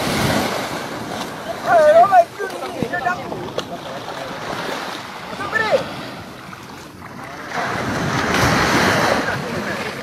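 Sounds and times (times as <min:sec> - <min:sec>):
sea waves washing in: 0:00.0 - 0:10.0
wind buffeting microphone: 0:00.0 - 0:10.0.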